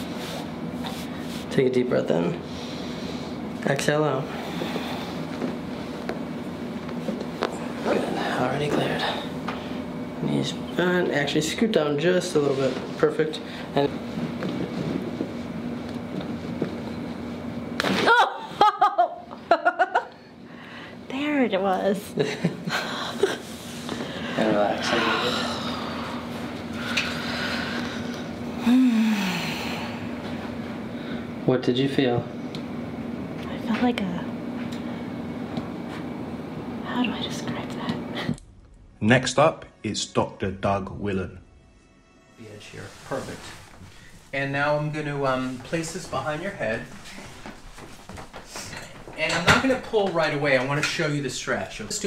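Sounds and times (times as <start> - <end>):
low room hum: 0.0 - 52.0
person humming or sighing: 24.9 - 26.0, 28.5 - 30.1.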